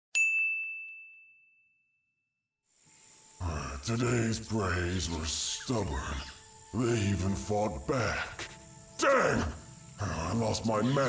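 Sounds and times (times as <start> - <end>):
bright bell-like ding: 0.2 - 2.1.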